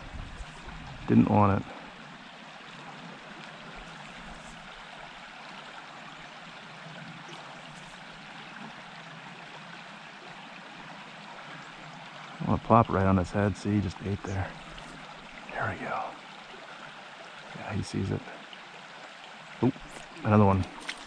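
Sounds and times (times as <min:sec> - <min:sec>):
water rushing over stones: 0:19.6 - 0:21.0.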